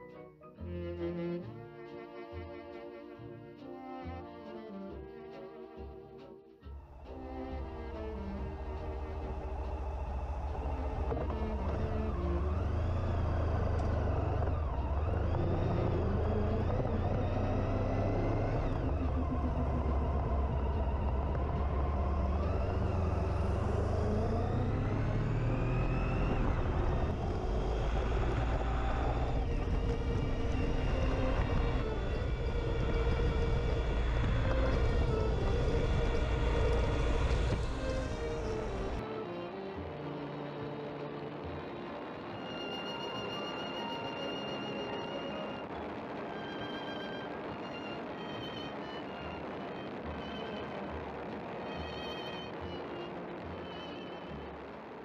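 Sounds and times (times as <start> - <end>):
road rumble: 6.7 - 55.0
motorcycle engine: 6.9 - 39.0
wind rushing: 6.9 - 39.0.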